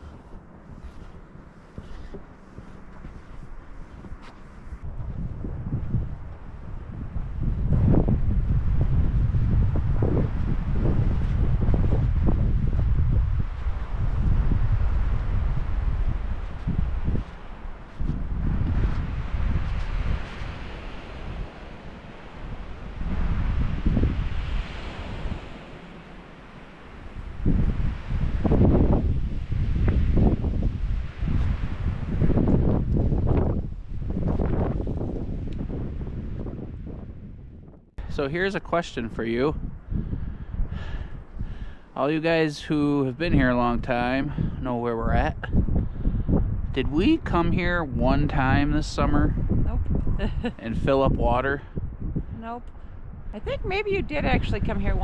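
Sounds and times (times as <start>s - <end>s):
strong wind buffeting microphone: 0.0s - 55.0s.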